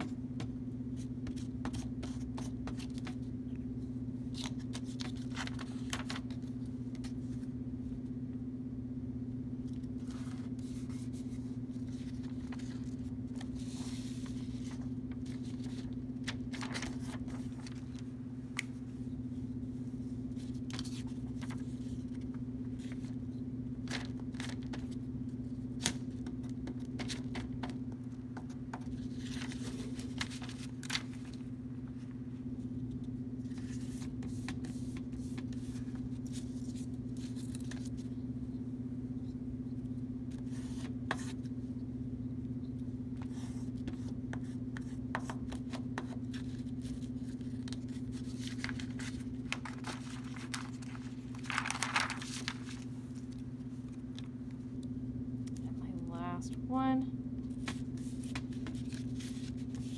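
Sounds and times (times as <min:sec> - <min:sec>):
steady low hum: 0:00.0 - 0:59.9
paper rustling and rubbing: 0:04.3 - 0:07.5, 0:10.0 - 0:18.1, 0:20.3 - 0:23.2, 0:28.8 - 0:31.5, 0:33.4 - 0:38.1, 0:43.2 - 0:54.3, 0:57.5 - 0:59.9.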